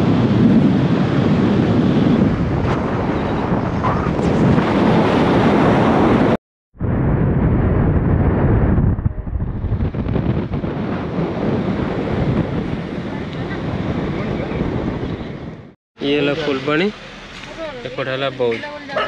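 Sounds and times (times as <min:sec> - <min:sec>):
wind buffeting microphone: 0:00.0 - 0:15.8
vehicle road noise: 0:12.6 - 0:19.0.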